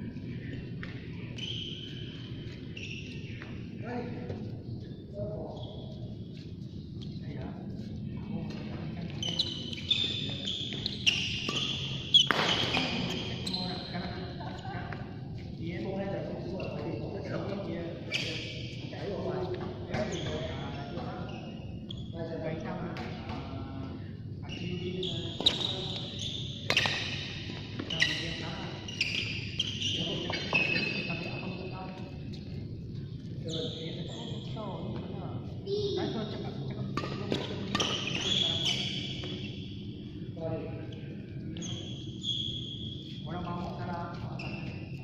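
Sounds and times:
shoes squeaking on court: 0:00.4 - 0:03.6, 0:08.5 - 0:14.7, 0:18.1 - 0:22.2, 0:24.5 - 0:35.1, 0:36.9 - 0:39.8, 0:40.9 - 0:45.0
rackets striking shuttlecock: 0:11.4 - 0:13.0.

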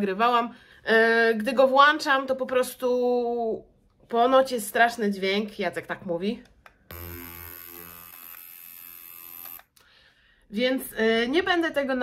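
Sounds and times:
electric skin scrubber humming: 0:06.9 - 0:09.7.

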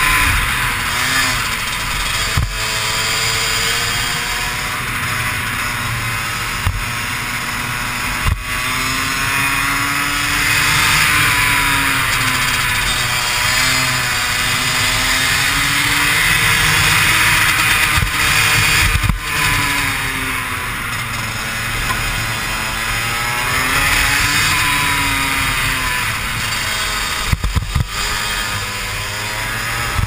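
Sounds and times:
kart engine revving: 0:00.0 - 0:30.0.

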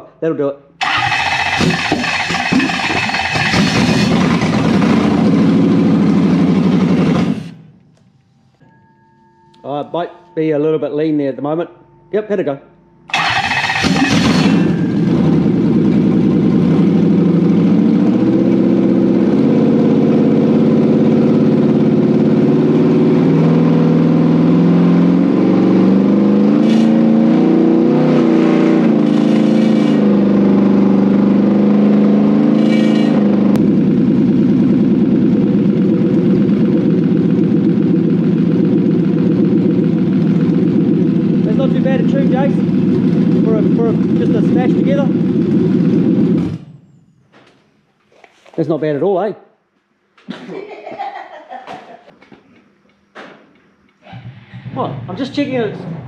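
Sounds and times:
engine revving and idling: 0:00.8 - 0:07.7, 0:13.1 - 0:46.7, 0:54.1 - 0:56.0.

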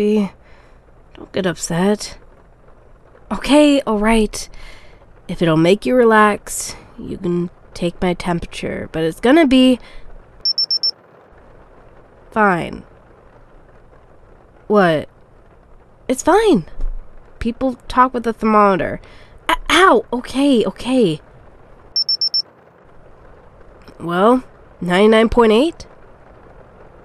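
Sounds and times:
digital thermometer beeping: 0:10.5 - 0:10.9, 0:22.0 - 0:22.4.

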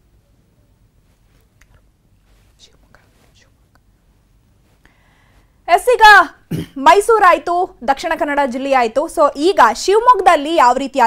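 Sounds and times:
faint whispery hisses: 0:00.2 - 0:05.7.

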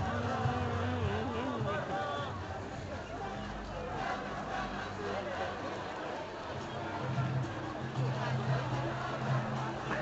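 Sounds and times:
street crowd: 0:00.0 - 0:10.0.

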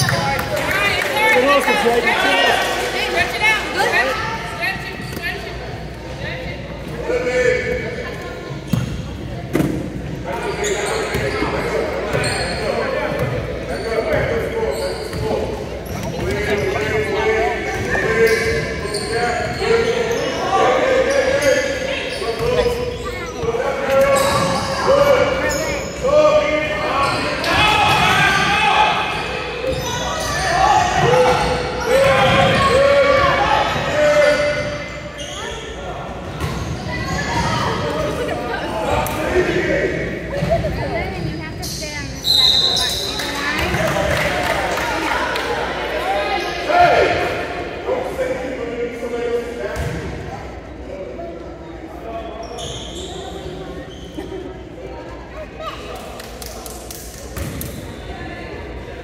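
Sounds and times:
voices calling out in gym: 0:00.0 - 0:59.0.

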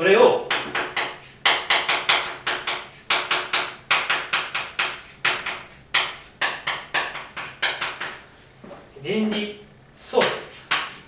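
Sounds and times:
chalk tapping and scraping on blackboard: 0:00.5 - 0:08.4, 0:09.3 - 0:11.0.

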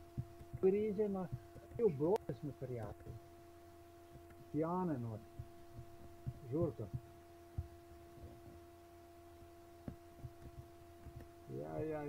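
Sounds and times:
faint low knocks: 0:00.0 - 0:03.3, 0:04.1 - 0:08.7, 0:09.4 - 0:11.5
steady hum: 0:00.0 - 0:12.0.

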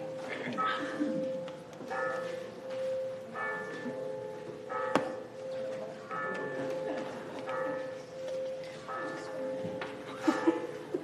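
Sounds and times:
church bell tolling: 0:00.0 - 0:11.0.

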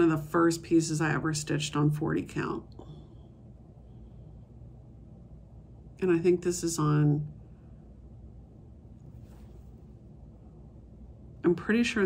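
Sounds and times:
steady low hum: 0:00.0 - 0:12.0
fabric rustle: 0:09.0 - 0:10.0.

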